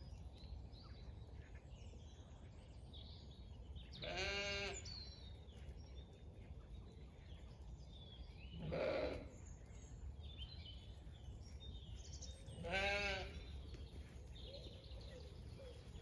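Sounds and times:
sheep bleating: 4.0 - 4.8, 8.6 - 9.3, 12.6 - 13.4.

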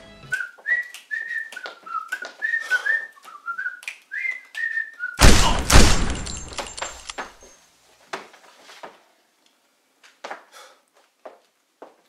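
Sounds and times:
person whistling a tune: 0.3 - 5.2
sharp clicks: 5.2 - 7.3.

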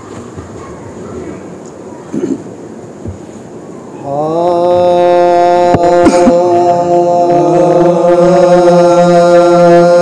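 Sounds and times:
faint voices: 0.0 - 8.2.

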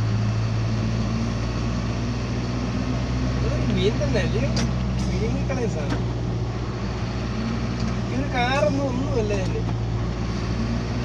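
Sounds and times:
road noise: 0.0 - 11.0
vehicle engine hum: 0.0 - 11.0.

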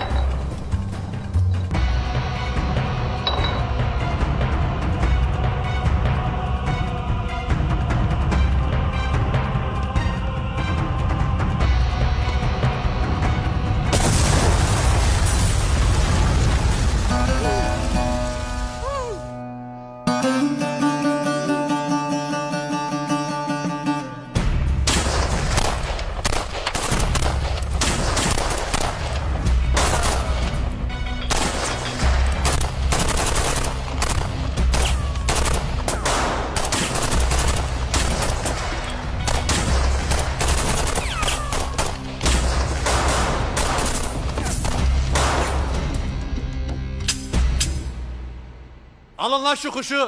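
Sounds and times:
dramatic music: 0.0 - 49.2
rapid dense gunfire: 24.9 - 30.4, 31.3 - 45.7.

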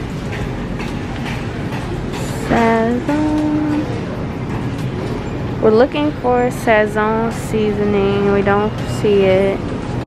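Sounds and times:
supermarket background rumble: 0.0 - 10.0.

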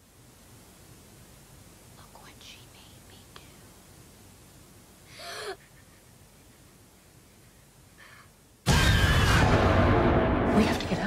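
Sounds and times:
person whispering: 2.0 - 3.7.

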